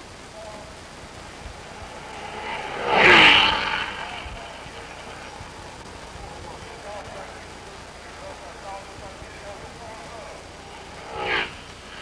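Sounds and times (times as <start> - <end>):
racing car passing: 0.4 - 12.0.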